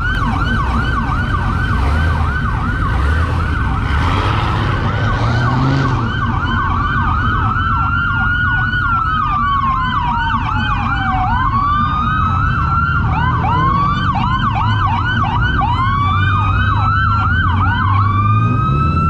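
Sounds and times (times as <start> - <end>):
police sirens yelping and wailing: 0.0 - 19.0
vehicle engines running: 0.0 - 19.0.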